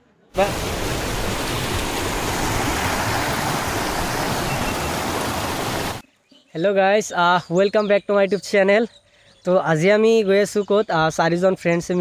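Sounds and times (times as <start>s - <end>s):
river rushing over rocks: 0.4s - 6.0s.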